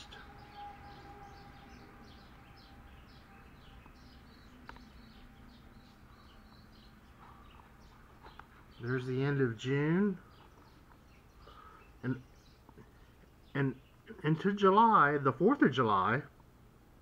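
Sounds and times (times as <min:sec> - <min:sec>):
birds chirping: 0:00.0 - 0:16.5
low background hum: 0:00.0 - 0:17.0.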